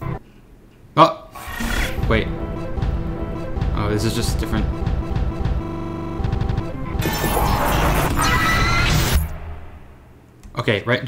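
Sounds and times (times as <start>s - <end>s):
harsh crash of noise: 1.5s - 10.3s
sci-fi title music: 1.5s - 10.3s.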